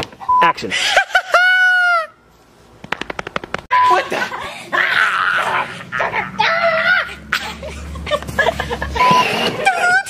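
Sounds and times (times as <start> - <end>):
short steady beep: 0.3 - 0.6
rapid sharp clicks: 2.8 - 3.7.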